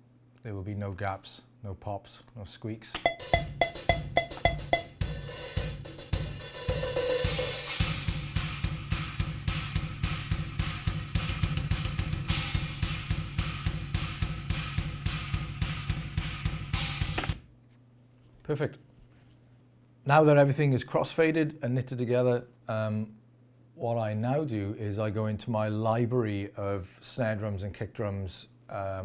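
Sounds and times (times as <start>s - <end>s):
rock drum kit playing: 3.0s - 17.4s
fast kick drum pulse: 3.1s - 17.4s.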